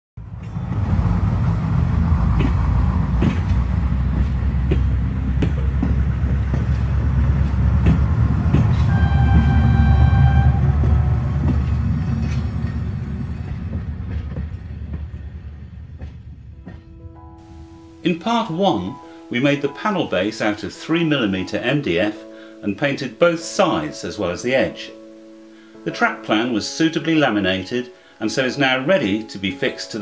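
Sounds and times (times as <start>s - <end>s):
train rumbling past: 0.2s - 22.3s
train wheels clicking: 0.3s - 17.0s
train horn blast: 8.3s - 12.5s.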